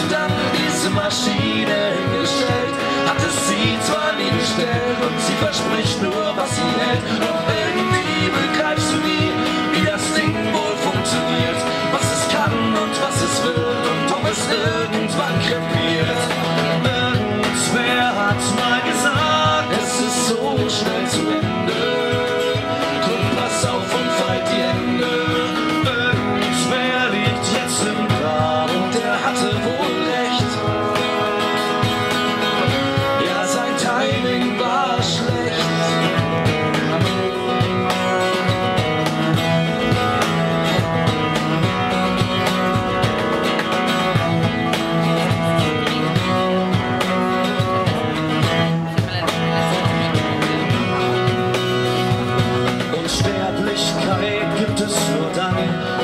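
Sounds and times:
cajon beat: 0:00.0 - 0:56.0
cello: 0:00.0 - 0:56.0
strummed acoustic guitar: 0:00.0 - 0:56.0.

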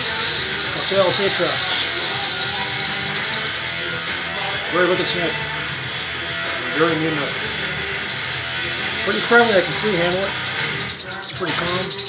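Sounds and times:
rattlesnake rattle buzzing: 0:00.0 - 0:04.6, 0:07.2 - 0:12.0
background music: 0:00.0 - 0:12.0.

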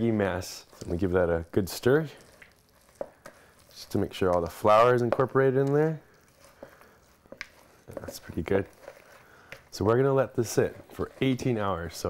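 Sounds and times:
spoon stirring dough: 0:00.0 - 0:12.0.

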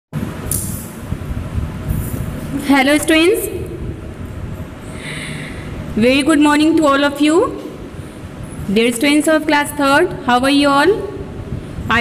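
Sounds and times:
low rumbling background noise: 0:00.2 - 0:12.0.

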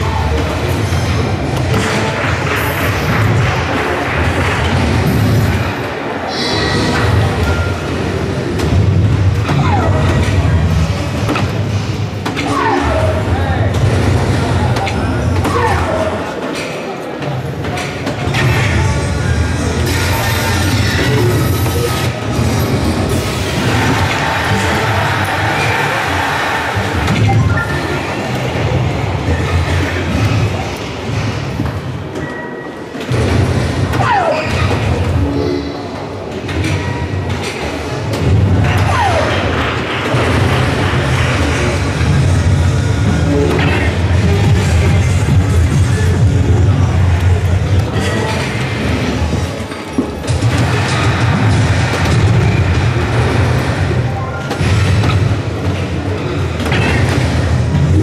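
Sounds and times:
low din of a busy hall: 0:00.0 - 0:58.0.

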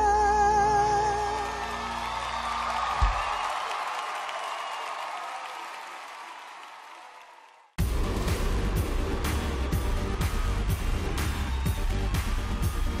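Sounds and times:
studio audience applauding and cheering: 0:00.6 - 0:13.0
low thump: 0:03.0 - 0:03.3
loud theme music: 0:07.8 - 0:13.0.

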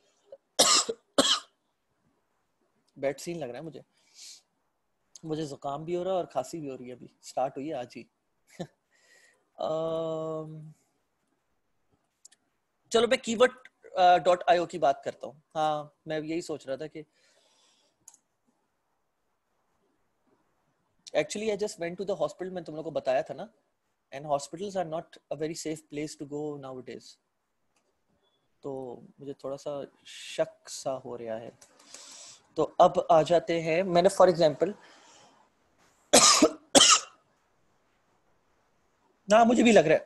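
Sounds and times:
man coughing: 0:00.6 - 0:01.5, 0:36.2 - 0:37.2
faint hiss: 0:01.8 - 0:40.0.

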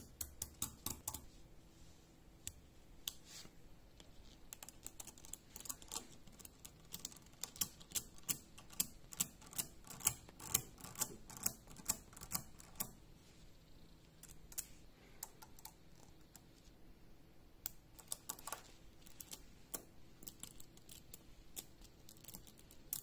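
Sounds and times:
magnetic balls clicking: 0:00.0 - 0:01.3, 0:04.0 - 0:13.0, 0:17.6 - 0:23.0.

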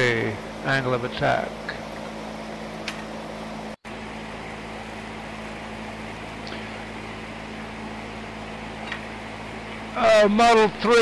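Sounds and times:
electric fan running: 0:00.0 - 0:11.0.

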